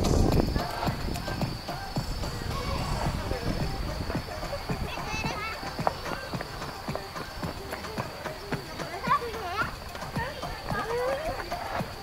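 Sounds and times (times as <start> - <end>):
footsteps on hard path: 0.0 - 12.0
people talking: 0.0 - 12.0.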